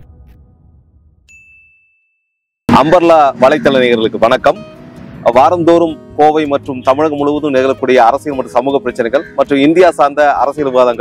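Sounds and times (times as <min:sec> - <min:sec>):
high ding: 0:01.3 - 0:02.5.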